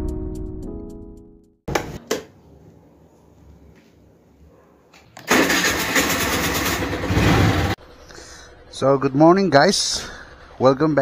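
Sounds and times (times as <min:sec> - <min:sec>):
electric starter cranking: 0:05.2 - 0:07.8
scooter engine running: 0:05.3 - 0:11.0.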